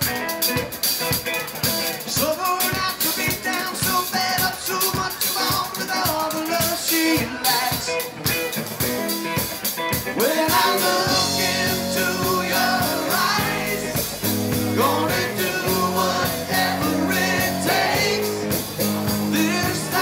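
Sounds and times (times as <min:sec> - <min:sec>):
drum kit: 0:00.0 - 0:20.0
electric guitar: 0:00.0 - 0:20.0
person singing: 0:02.0 - 0:08.2, 0:10.1 - 0:20.0.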